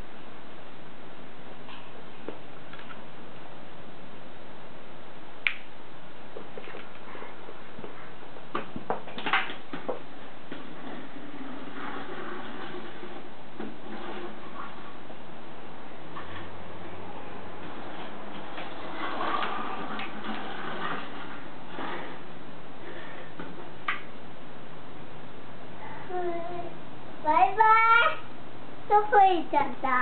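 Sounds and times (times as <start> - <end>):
steady background hiss: 0.0 - 30.0
plastic toy rolling on wood: 9.1 - 15.0, 17.6 - 22.3.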